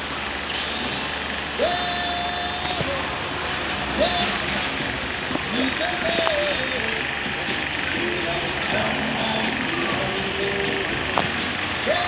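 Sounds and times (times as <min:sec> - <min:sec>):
long flat held tone: 0:00.0 - 0:12.0.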